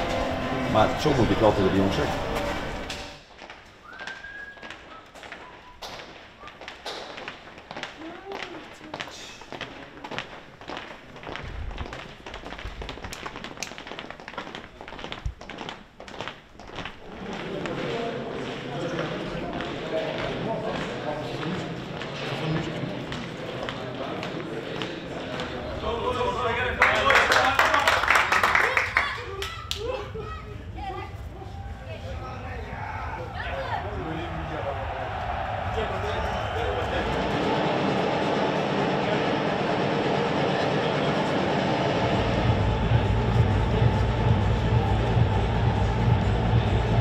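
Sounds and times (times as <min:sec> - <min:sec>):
footsteps on hard floor: 0:02.1 - 0:18.1
murmur of men's voices: 0:17.1 - 0:28.2.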